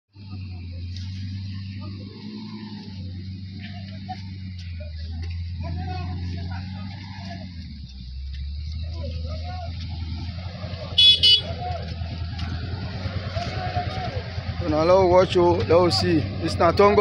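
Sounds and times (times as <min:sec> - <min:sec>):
vehicle engine droning: 0:00.1 - 0:17.0
short high-pitched horn toots: 0:11.0 - 0:11.5.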